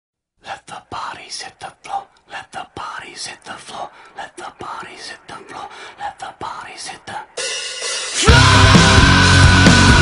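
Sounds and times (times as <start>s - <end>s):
person whispering: 0.4s - 7.4s.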